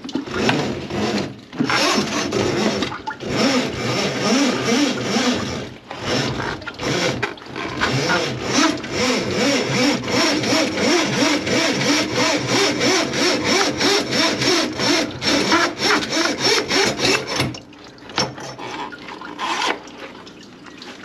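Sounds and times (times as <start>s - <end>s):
hand saw cutting: 0.3s - 17.5s, 18.2s - 19.8s.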